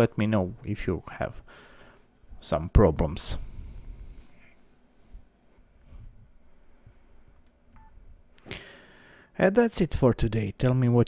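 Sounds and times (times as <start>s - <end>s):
faint electronic beep: 7.7s - 8.0s.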